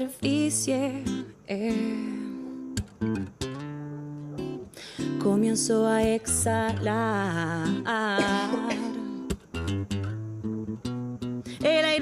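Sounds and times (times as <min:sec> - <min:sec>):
woman singing: 0:00.0 - 0:02.6, 0:04.9 - 0:09.3, 0:11.5 - 0:12.0
acoustic guitar: 0:00.0 - 0:12.0
sharp guitar strums: 0:07.9 - 0:11.6.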